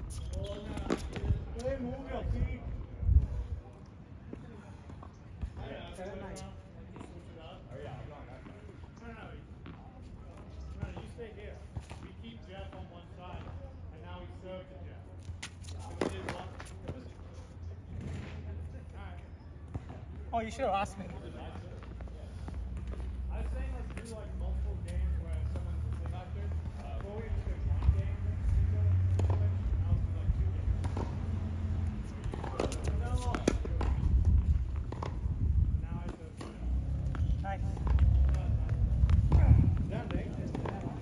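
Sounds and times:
wind buffeting microphone: 0.8 - 3.7, 32.6 - 41.0
tennis balls struck and bouncing: 15.3 - 17.3, 28.6 - 30.0, 30.6 - 35.4, 36.0 - 41.0.

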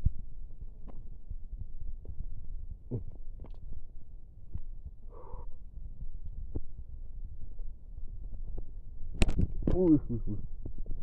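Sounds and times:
microphone handling rumble: 5.6 - 11.0.

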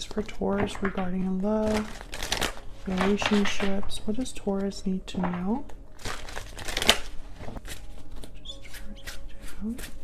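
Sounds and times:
cards being shuffled: 6.0 - 10.0.

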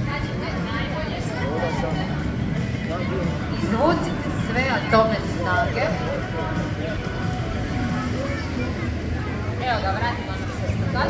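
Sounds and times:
faint announcer over loudspeaker: 0.0 - 11.0.

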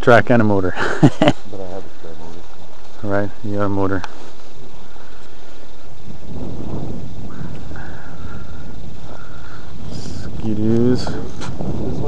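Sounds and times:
wind buffeting microphone: 4.5 - 12.0.

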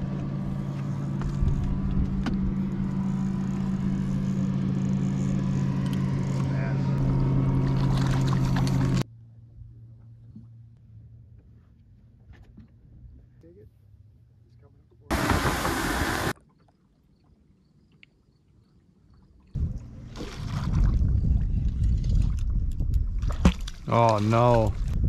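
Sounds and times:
low rumbling water and wind: 15.0 - 17.4, 18.9 - 25.0
loud rush of hiss: 15.1 - 16.3.

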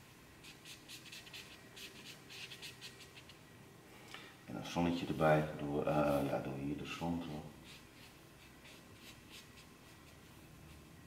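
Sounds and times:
marker scratching on paper: 0.4 - 3.4, 7.6 - 10.9.

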